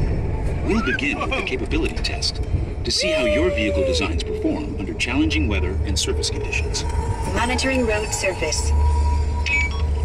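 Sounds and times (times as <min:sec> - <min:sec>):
ride vehicle rumbling on track: 0:00.0 - 0:10.0
recorded narration: 0:00.6 - 0:08.8
voices: 0:00.6 - 0:08.8.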